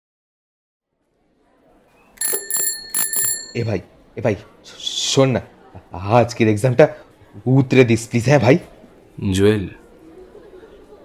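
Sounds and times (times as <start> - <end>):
bicycle bell ringing: 2.2 - 3.8.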